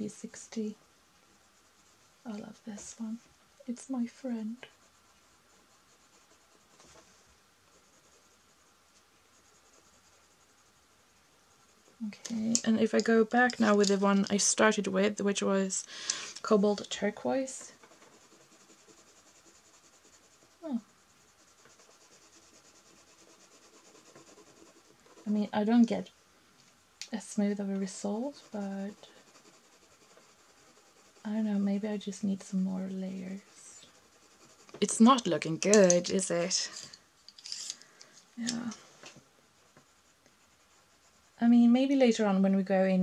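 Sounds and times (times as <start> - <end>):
colored pencil scratching on paper: 0.0 - 26.2, 27.1 - 37.7, 38.4 - 42.6.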